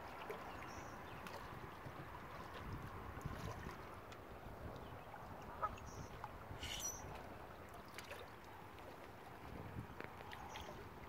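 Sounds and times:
small waves lapping on rocks: 0:00.0 - 0:11.0.

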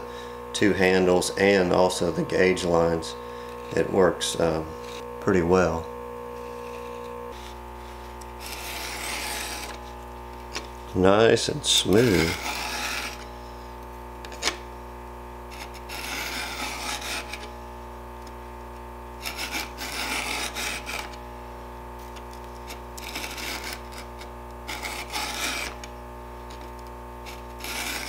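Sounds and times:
file rasping on chainsaw chain: 0:08.4 - 0:09.8, 0:11.9 - 0:13.3, 0:15.5 - 0:17.5, 0:19.2 - 0:21.2, 0:22.7 - 0:24.1, 0:24.7 - 0:25.8, 0:27.2 - 0:28.0.

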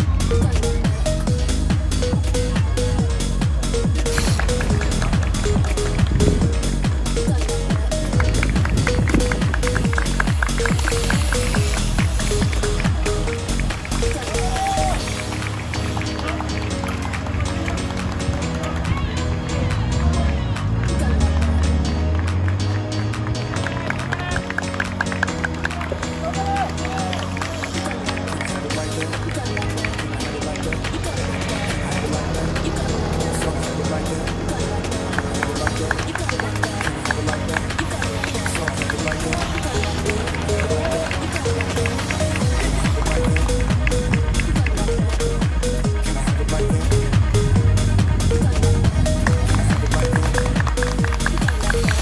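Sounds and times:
electronic pop music: 0:00.0 - 0:52.0.

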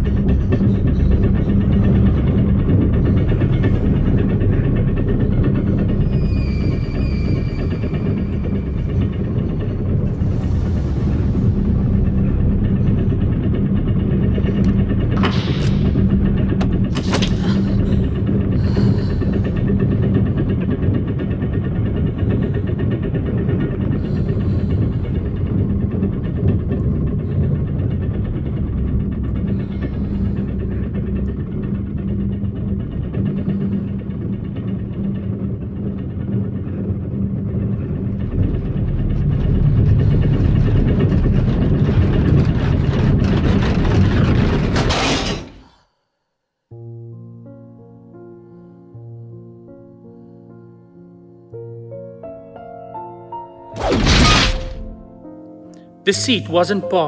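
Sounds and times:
constant hum: 0:00.0 - 0:45.8, 0:53.7 - 0:57.0
deep rumble: 0:00.0 - 0:45.8, 0:53.3 - 0:55.6.

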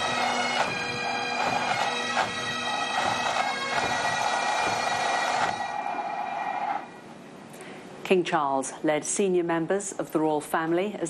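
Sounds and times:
bagpipes sustained note: 0:00.0 - 0:06.9.

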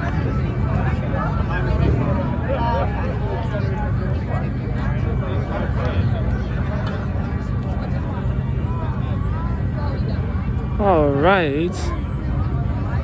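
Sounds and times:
race car engines rumbling: 0:00.0 - 0:13.0
spectators talking: 0:00.0 - 0:13.0.

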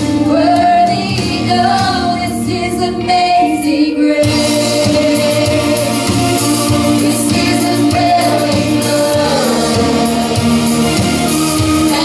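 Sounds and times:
steady drum beat: 0:00.0 - 0:03.6, 0:04.2 - 0:12.0
women singing worship song: 0:00.0 - 0:11.2
instrumental accompaniment: 0:00.0 - 0:12.0.

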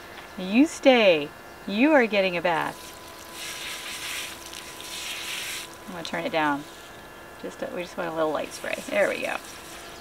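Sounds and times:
small pump humming: 0:01.7 - 0:10.0
water spraying from shower: 0:02.6 - 0:07.0, 0:08.3 - 0:10.0.

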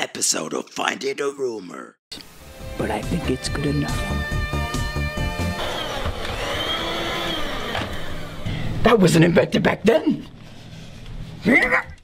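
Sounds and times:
rising and falling tone: 0:03.9 - 0:08.5.

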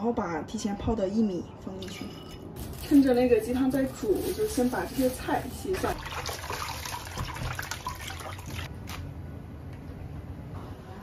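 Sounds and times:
hands swishing greens in water: 0:02.6 - 0:07.6
water splashing and dripping: 0:04.8 - 0:08.7.

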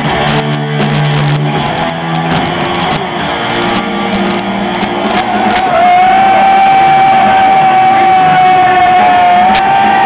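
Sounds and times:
heavy metal band playing live: 0:00.0 - 0:10.0.

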